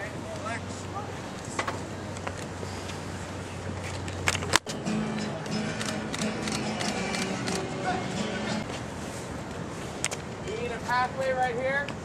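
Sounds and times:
marching band music: 0:04.7 - 0:08.7.

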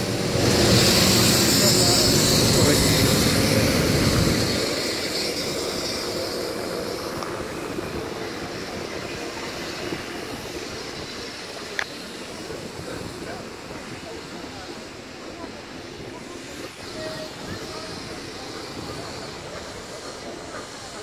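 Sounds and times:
steam locomotive hissing roar: 0:00.0 - 0:21.0
train coaches rolling by: 0:00.0 - 0:21.0.

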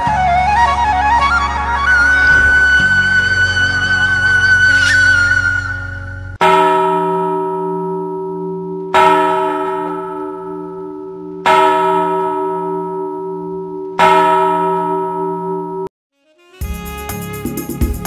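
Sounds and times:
held musical note: 0:00.0 - 0:06.9
church bell tolling: 0:06.4 - 0:15.9.

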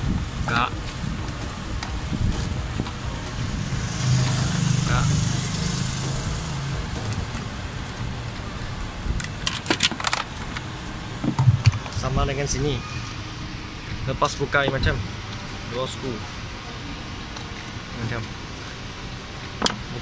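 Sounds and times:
low engine hum: 0:00.0 - 0:12.4
sharp metallic clicks and rattles: 0:09.1 - 0:12.0.

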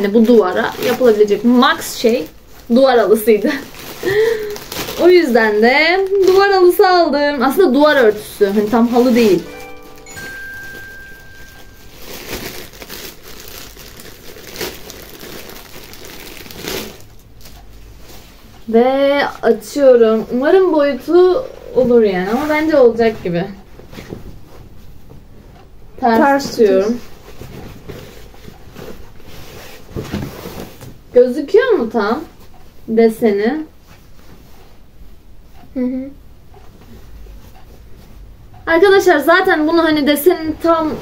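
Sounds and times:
plastic bag crinkling: 0:00.0 - 0:17.6
fabric rustling: 0:00.0 - 0:18.6, 0:20.1 - 0:25.6, 0:26.2 - 0:31.0.

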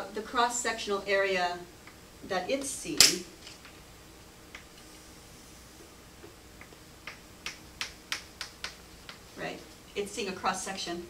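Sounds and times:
sharp taps: 0:06.6 - 0:09.3.

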